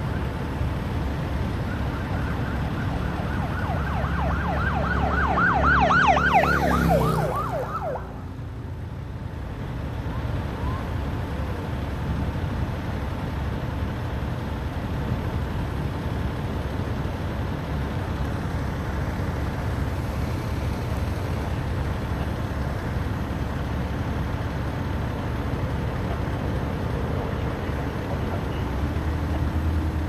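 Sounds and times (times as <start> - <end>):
road traffic rumble: 0.0 - 30.0.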